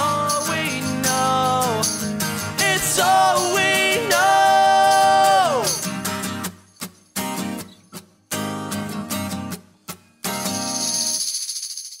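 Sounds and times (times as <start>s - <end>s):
acoustic guitar strumming chords: 0.0s - 6.6s, 7.2s - 10.7s.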